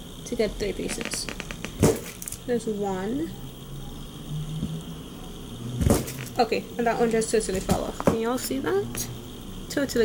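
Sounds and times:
wax crunching thud: 0:00.9 - 0:02.4.

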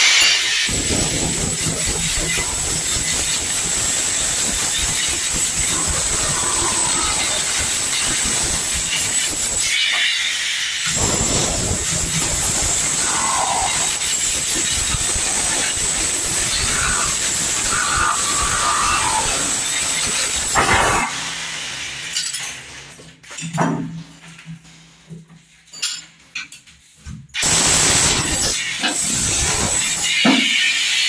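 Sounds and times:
demolition hammer chipping tiles: 0:00.0 - 0:21.2, 0:27.4 - 0:31.0.

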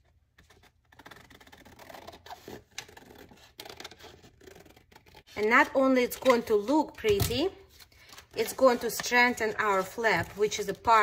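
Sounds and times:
paper rustling: 0:07.7 - 0:10.8.

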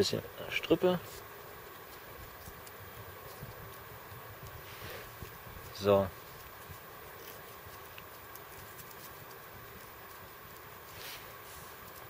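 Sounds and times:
low outdoor hiss: 0:00.0 - 0:12.0
faint rustling of cord: 0:01.0 - 0:12.0.

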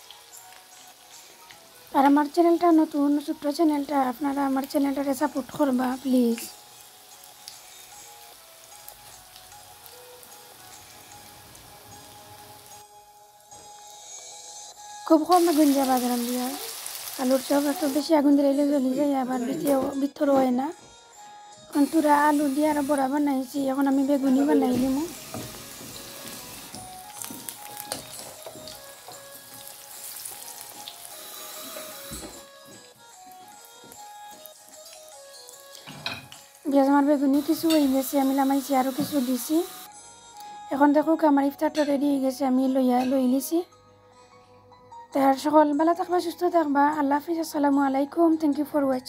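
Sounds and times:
oil sizzling in a frying pan: 0:00.0 - 0:12.9, 0:15.2 - 0:19.1, 0:21.7 - 0:32.4, 0:34.3 - 0:39.9
background music with singing: 0:00.0 - 0:49.0.

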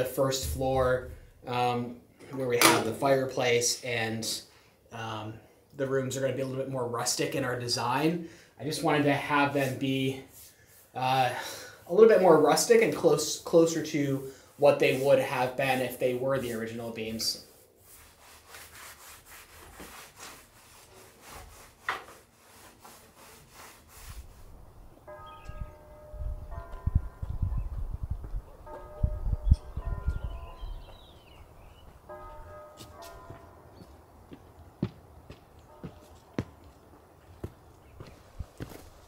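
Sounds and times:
brush scrubbing on wood: 0:08.6 - 0:11.2, 0:11.9 - 0:24.8
wind rumble on microphone: 0:24.1 - 0:31.6
sharp footsteps: 0:31.8 - 0:39.0.

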